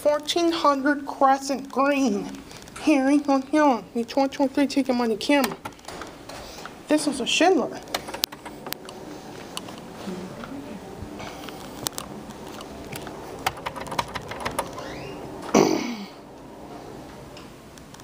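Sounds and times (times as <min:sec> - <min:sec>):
steady hum: 0:00.0 - 0:18.0.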